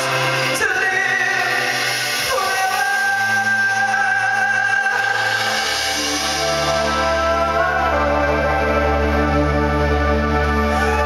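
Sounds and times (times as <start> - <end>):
man singing long notes: 0.0 - 11.0.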